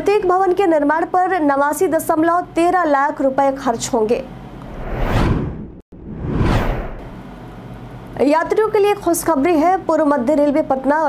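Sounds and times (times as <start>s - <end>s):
whoosh sound effect: 4.6s - 7.2s.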